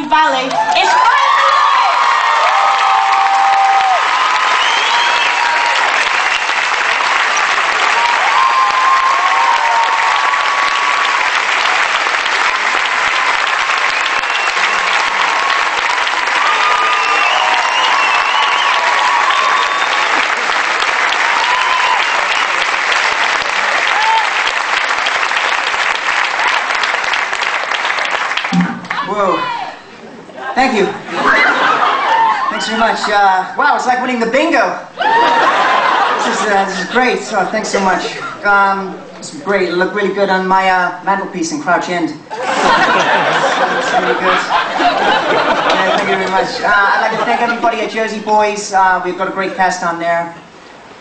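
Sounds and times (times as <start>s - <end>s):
audience applause: 0.5s - 29.6s, 31.2s - 33.2s, 35.0s - 37.1s, 42.4s - 48.0s.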